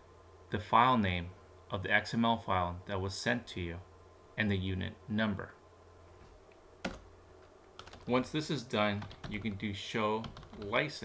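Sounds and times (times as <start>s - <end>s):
faint low hum: 0.0s - 11.0s
computer keyboard typing: 6.8s - 7.1s, 7.8s - 8.3s, 8.9s - 10.8s.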